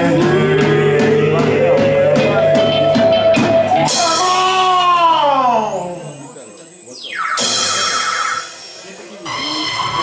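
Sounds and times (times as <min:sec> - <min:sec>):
rock band playing live: 0:00.0 - 0:05.2, 0:07.1 - 0:10.0
drums striking a steady beat: 0:00.0 - 0:06.0, 0:07.1 - 0:10.0.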